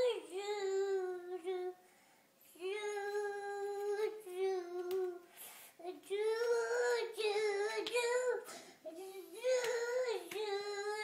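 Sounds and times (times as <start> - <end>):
toddler singing: 0.0 - 1.8, 2.5 - 11.0.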